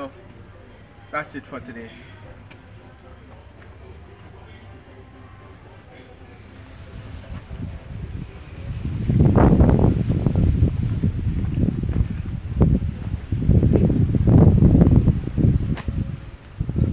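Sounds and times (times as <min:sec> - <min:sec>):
wind buffeting microphone: 0:06.6 - 0:16.9.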